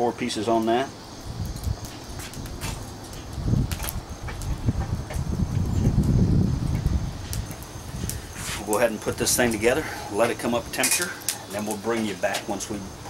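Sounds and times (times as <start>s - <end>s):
wood knocking on coals: 1.4s - 12.8s.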